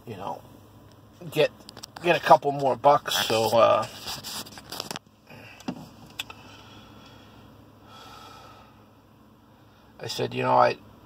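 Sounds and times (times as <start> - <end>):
truck cab low hum: 0.0 - 11.0.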